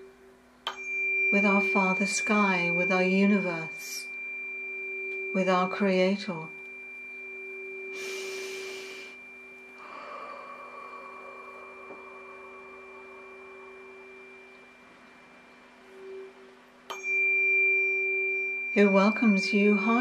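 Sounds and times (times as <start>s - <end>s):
tuning fork ringing: 0.0s - 20.0s
tuning fork tap: 0.6s - 4.1s, 5.0s - 7.3s, 11.8s - 12.1s, 16.9s - 18.8s
breathy hiss: 7.8s - 14.4s.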